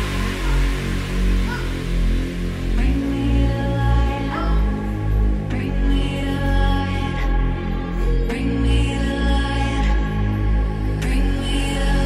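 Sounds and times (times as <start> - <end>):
long held chords: 0.0 - 8.9
deep bass: 0.0 - 12.0.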